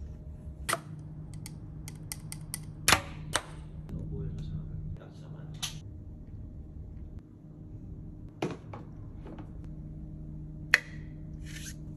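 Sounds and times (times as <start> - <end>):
low steady hum: 0.0 - 11.9.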